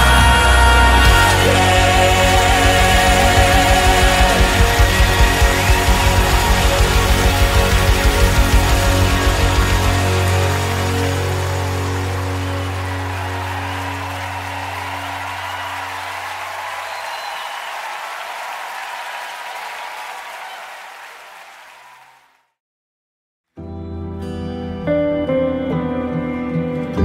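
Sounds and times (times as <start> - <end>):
drum beat: 1.0 - 11.0.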